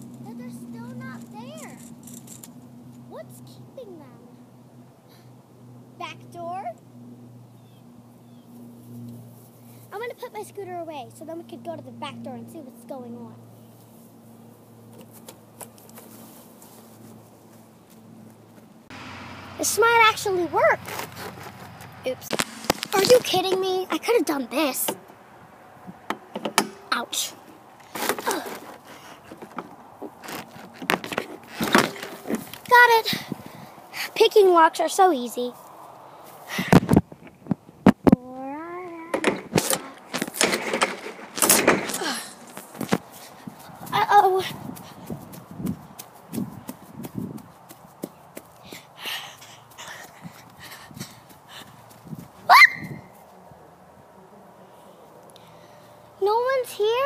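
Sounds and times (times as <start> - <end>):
footsteps on grass: 14.9 - 23.8, 42.3 - 53.5
falling yelp-like call: 52.5 - 53.0.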